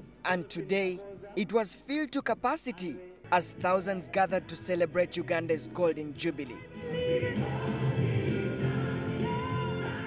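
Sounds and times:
choir singing: 0:06.7 - 0:10.0.

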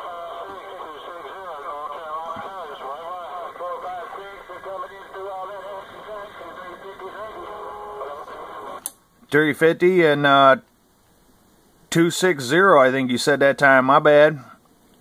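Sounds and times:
voice over radio speaker: 0:00.0 - 0:08.8
radio background hiss: 0:00.0 - 0:15.0.

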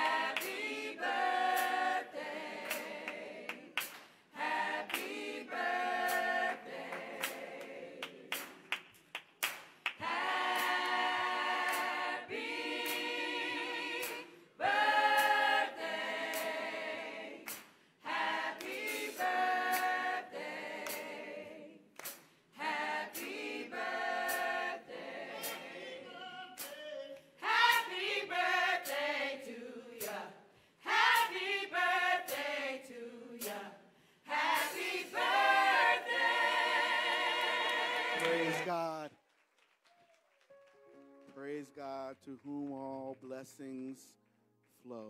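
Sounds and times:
hand claps: 0:00.0 - 0:00.8, 0:02.6 - 0:04.2, 0:04.8 - 0:05.3, 0:06.0 - 0:12.1, 0:16.2 - 0:16.6, 0:17.4 - 0:17.8, 0:18.6 - 0:20.1, 0:20.8 - 0:21.2, 0:22.0 - 0:22.3, 0:24.2 - 0:24.6, 0:26.6 - 0:28.0, 0:37.1 - 0:45.0
choir and congregation singing: 0:00.0 - 0:08.9, 0:09.9 - 0:39.0.

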